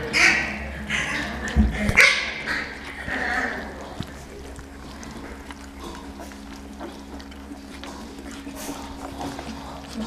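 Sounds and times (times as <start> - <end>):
puppies yipping and whimpering: 0.0 - 10.0.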